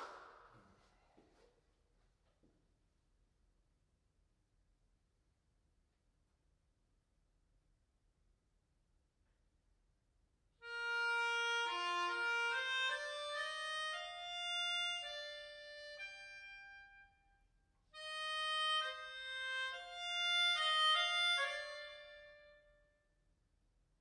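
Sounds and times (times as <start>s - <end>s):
melodica playing a melody: 10.6s - 17.2s, 18.0s - 22.8s.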